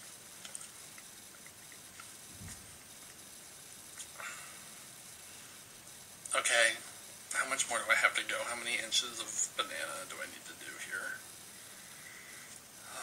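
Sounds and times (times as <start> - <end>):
steady hiss: 0.0 - 13.0
chewing soft banana: 0.3 - 3.3
wet mouth clicks: 0.4 - 2.2.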